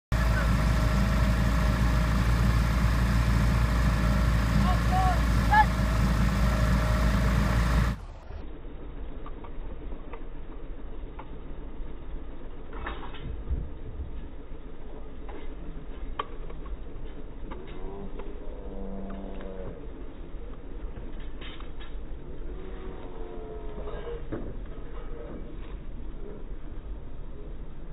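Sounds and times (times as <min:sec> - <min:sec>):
engine humming: 0:00.1 - 0:27.9.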